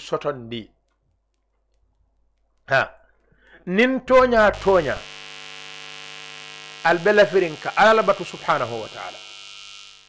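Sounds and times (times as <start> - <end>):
man speaking: 3.7 - 5.0
electrical mains buzz: 4.2 - 10.0.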